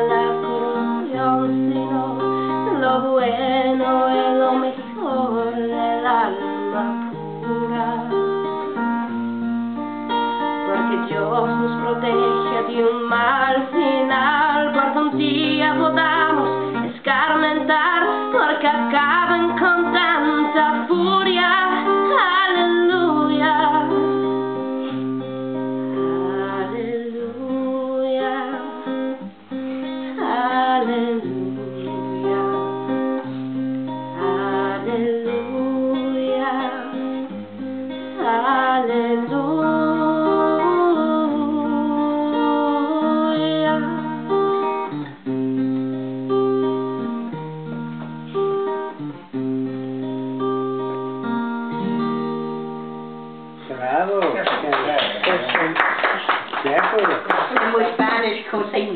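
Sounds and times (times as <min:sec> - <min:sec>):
woman singing: 0:00.0 - 0:09.2, 0:10.4 - 0:45.1
strummed acoustic guitar: 0:00.0 - 0:54.9.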